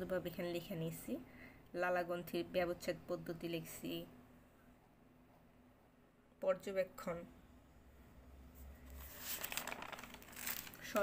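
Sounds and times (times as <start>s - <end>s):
notebook pages rustling: 8.6s - 11.0s.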